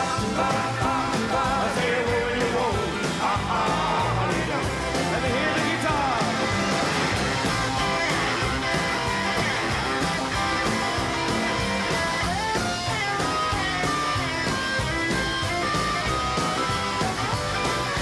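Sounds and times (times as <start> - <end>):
live rock band playing: 0.0 - 18.0
electric guitar solo: 6.2 - 18.0.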